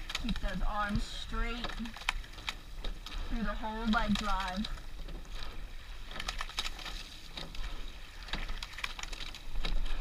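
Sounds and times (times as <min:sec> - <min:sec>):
oars clicking in oarlocks: 0:00.0 - 0:10.0.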